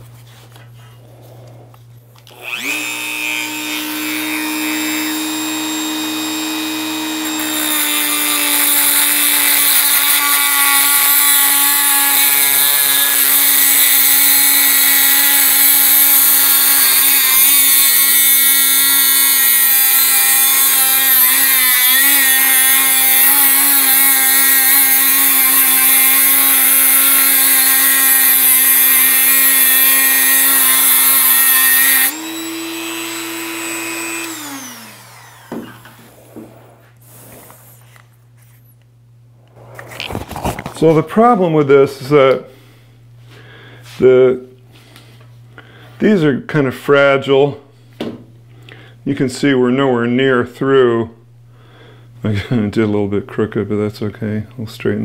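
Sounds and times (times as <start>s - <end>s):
rotary tool motor whining: 2.2s - 36.8s
abrasive disc grinding steel: 2.3s - 36.9s.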